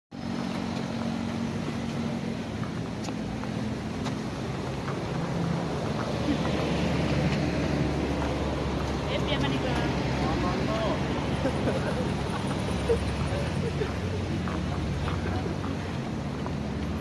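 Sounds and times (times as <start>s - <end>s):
vehicle engines humming: 0.1s - 17.0s.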